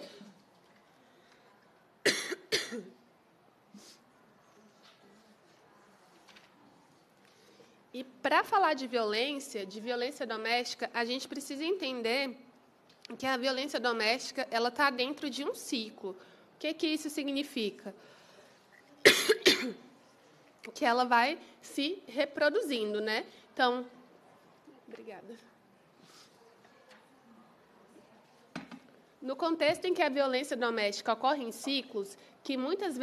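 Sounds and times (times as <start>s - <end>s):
person coughing: 2.0s - 2.9s, 19.0s - 19.8s.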